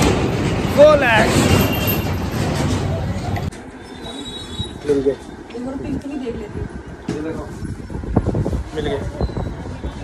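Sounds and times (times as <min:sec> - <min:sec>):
loud street noise: 0:00.0 - 0:10.0.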